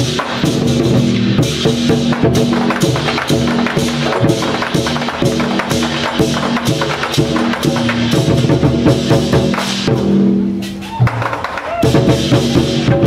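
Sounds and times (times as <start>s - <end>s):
hand cymbals clashing: 0.0s - 11.0s
large barrel drums beating: 0.0s - 13.0s.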